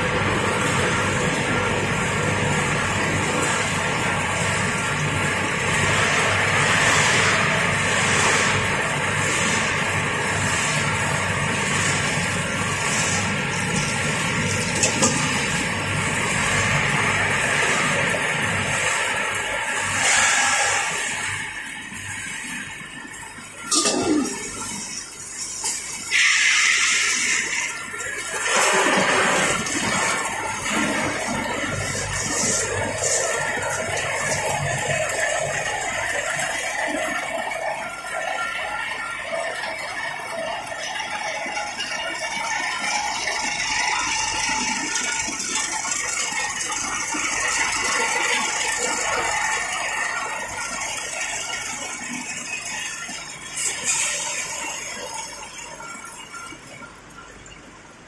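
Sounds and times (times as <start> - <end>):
machine noise with rattling: 0.0 - 58.0
running liquid: 0.0 - 58.0.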